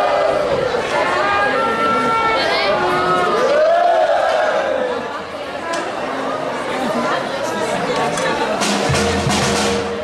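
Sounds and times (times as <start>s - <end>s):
crowd chatter: 0.0s - 10.0s
fanfare band playing: 8.4s - 10.0s.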